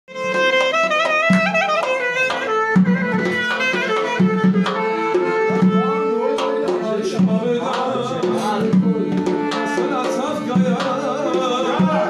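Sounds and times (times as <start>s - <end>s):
accordion accompaniment: 0.1s - 12.0s
clarinet folk melody: 0.1s - 12.0s
low beats: 1.0s - 12.0s.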